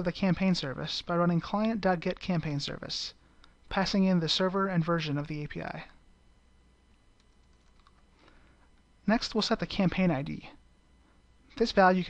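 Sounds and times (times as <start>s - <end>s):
faint keyboard typing: 6.9s - 8.4s.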